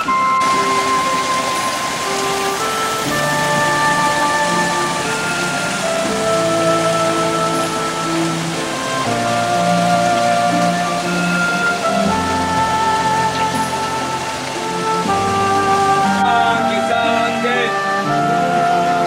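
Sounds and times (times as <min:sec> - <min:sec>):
slow music of held notes: 0:00.0 - 0:19.0
steady hiss: 0:00.0 - 0:19.0.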